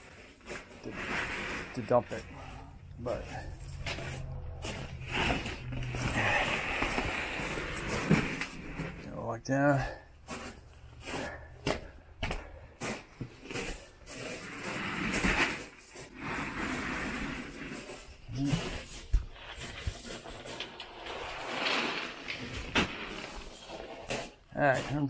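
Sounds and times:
gravel crunching under tyres: 0.0s - 25.0s.

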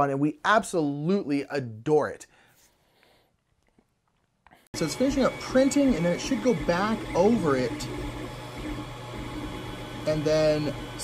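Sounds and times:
printer motors and fans humming: 4.8s - 11.0s.

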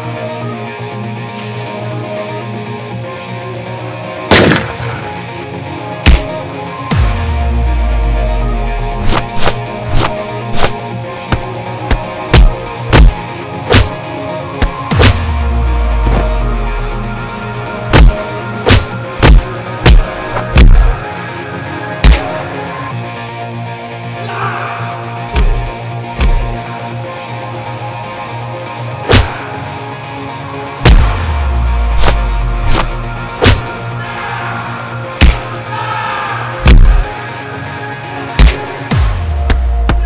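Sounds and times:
film score music: 0.0s - 40.0s
heavy punch hit: 6.1s - 6.3s, 11.3s - 14.0s, 14.6s - 15.4s, 17.9s - 20.9s, 22.0s - 22.3s, 29.1s - 29.4s, 30.8s - 33.8s, 35.2s - 35.5s, 36.6s - 37.1s, 38.4s - 40.0s.

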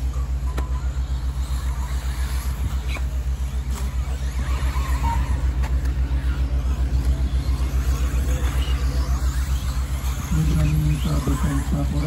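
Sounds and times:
pulsing low drone: 0.0s - 12.0s
rc buggies whining: 0.0s - 12.0s.

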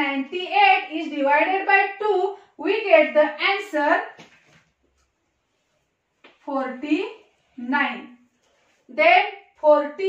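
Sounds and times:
woman speaking: 0.0s - 4.2s, 6.4s - 8.2s, 8.9s - 10.0s.

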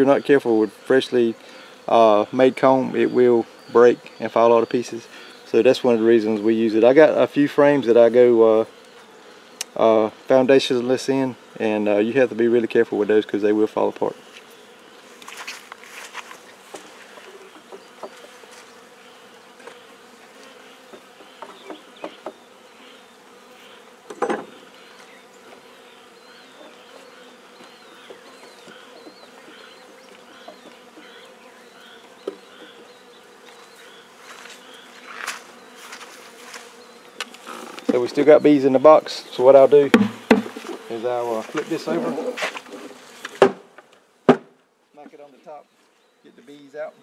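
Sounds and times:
bees buzzing: 0.0s - 47.0s
short knocks: 39.9s - 40.7s.

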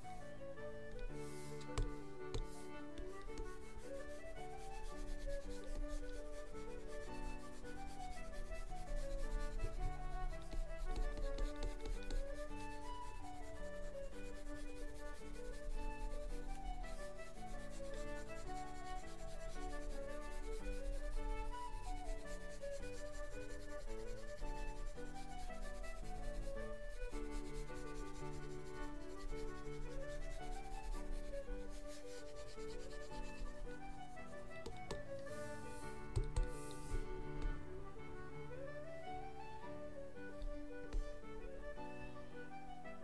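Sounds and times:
concertina tune: 0.0s - 43.0s
stylus scratching on tablet: 1.2s - 37.6s.

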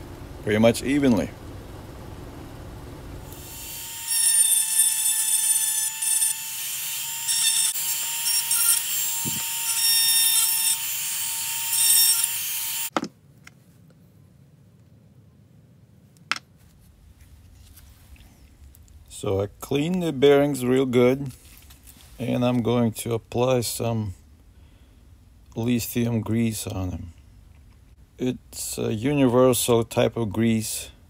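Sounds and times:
rotary tool grinding metal: 3.3s - 12.9s.

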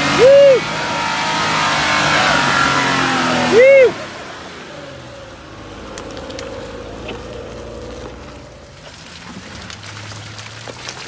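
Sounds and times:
engine running at low revs: 0.0s - 11.0s.

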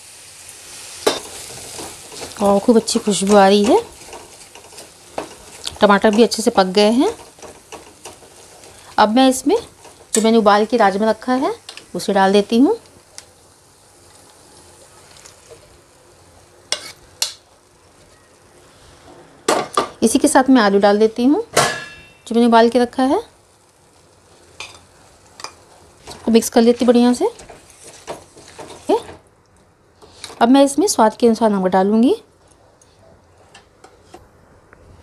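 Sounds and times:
faint sizzle: 0.0s - 35.0s
spatula scraping a pan: 16.7s - 17.1s.

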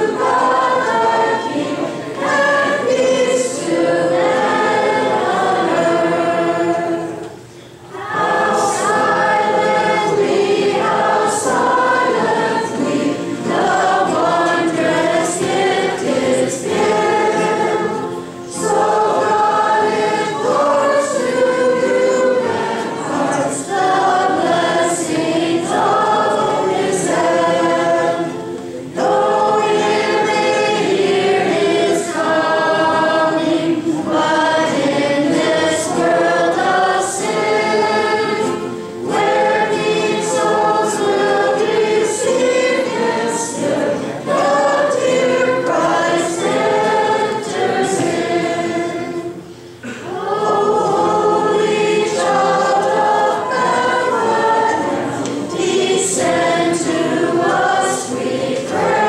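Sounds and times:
acoustic guitars: 0.0s - 59.0s
girls singing a carol: 0.0s - 59.0s.

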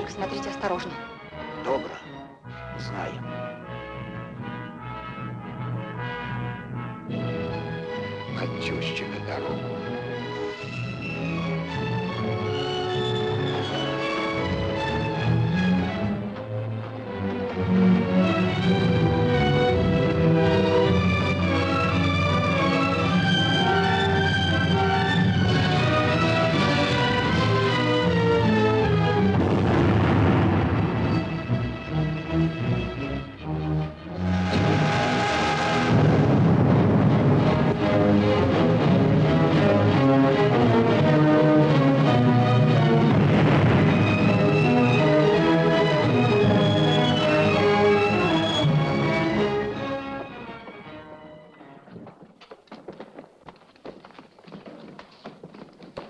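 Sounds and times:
orchestral film score: 0.0s - 52.0s
rushing noise: 34.2s - 39.4s.

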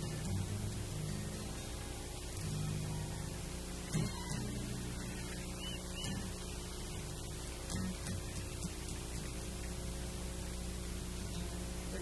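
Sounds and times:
acoustic guitar picked softly: 0.0s - 12.0s
steady electrical hum: 0.0s - 12.0s.

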